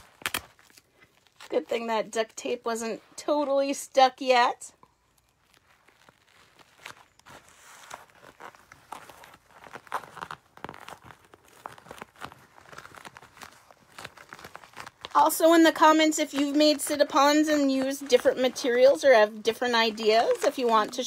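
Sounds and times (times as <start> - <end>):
duct tape ripping: 0.0 - 1.8, 5.1 - 21.0
plastic bag crinkling: 4.8 - 21.0.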